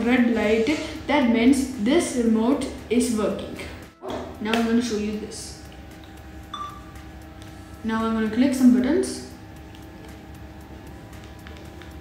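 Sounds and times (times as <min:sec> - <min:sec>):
faint steady hum: 0:03.6 - 0:12.0
short electronic beep: 0:06.5 - 0:07.0.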